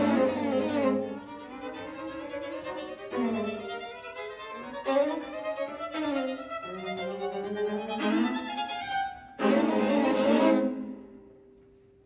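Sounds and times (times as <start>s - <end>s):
string quartet chords: 0.0s - 11.9s.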